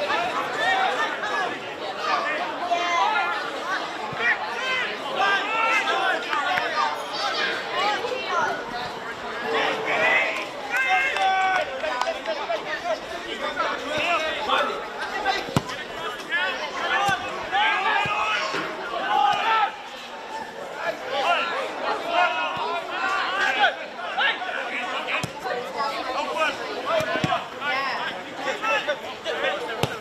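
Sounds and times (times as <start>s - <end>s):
voices calling and shouting: 0.0s - 30.0s
people shouting: 15.3s - 19.9s.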